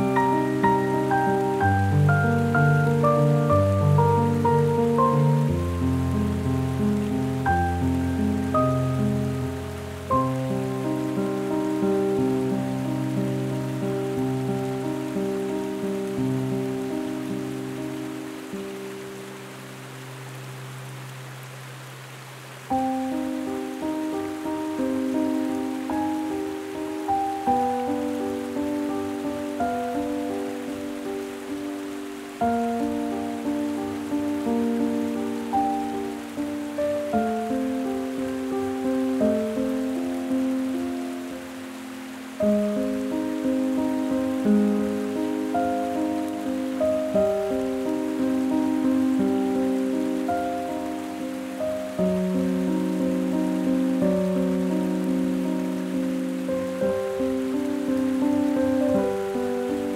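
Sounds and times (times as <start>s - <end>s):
solo piano: 0.0s - 59.9s.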